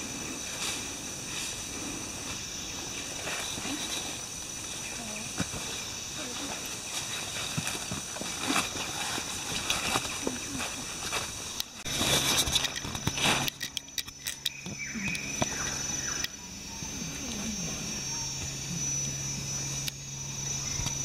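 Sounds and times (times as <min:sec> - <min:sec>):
insect drone: 0:00.0 - 0:21.0
rustling in dry leaf litter: 0:00.1 - 0:13.7.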